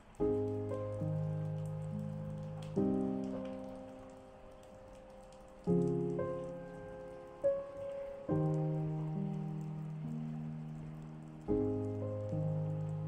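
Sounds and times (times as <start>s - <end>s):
rain patter: 0.0s - 13.0s
slow piano chords: 0.0s - 13.0s.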